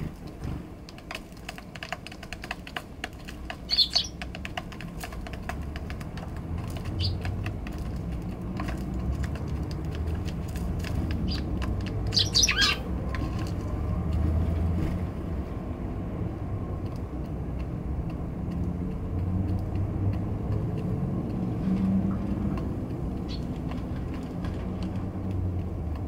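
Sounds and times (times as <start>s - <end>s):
distant traffic rumble: 0.0s - 26.0s
sparrows chirping: 3.4s - 4.4s, 6.5s - 8.2s, 10.1s - 13.0s, 23.0s - 23.7s.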